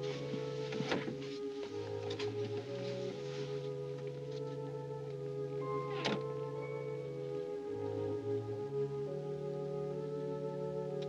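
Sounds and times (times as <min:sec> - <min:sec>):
orchestral film score: 0:00.0 - 0:11.0.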